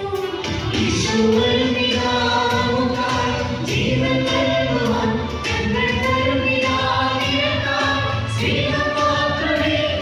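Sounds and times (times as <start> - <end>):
choir singing a hymn: 1.0 - 10.0.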